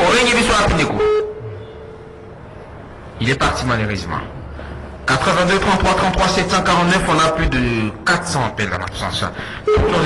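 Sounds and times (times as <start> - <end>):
telephone line tone: 9.7 - 10.0.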